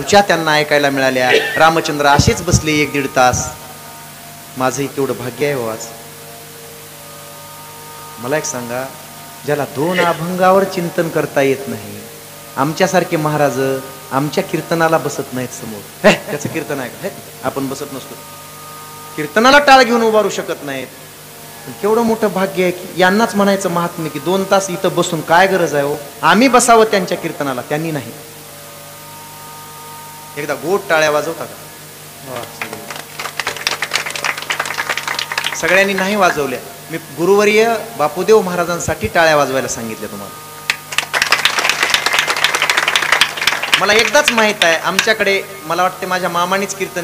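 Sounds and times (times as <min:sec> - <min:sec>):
electrical hum and hiss: 0:00.0 - 0:47.0.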